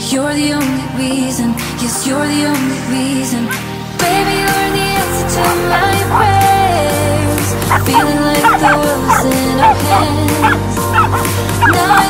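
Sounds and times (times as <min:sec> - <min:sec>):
pop song with bass: 0:00.0 - 0:12.0
dogs yipping and barking: 0:05.3 - 0:12.0.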